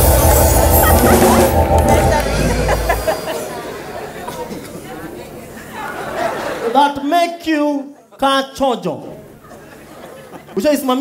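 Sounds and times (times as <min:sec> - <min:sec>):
audience chatter: 0:00.0 - 0:06.8, 0:09.2 - 0:10.6.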